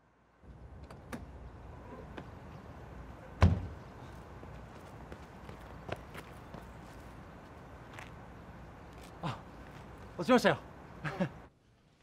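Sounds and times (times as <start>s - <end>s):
running footsteps on pavement: 4.0s - 8.2s.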